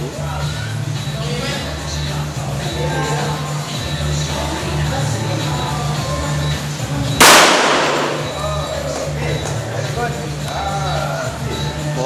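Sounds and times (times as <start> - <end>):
pistol shot: 7.2 - 8.4.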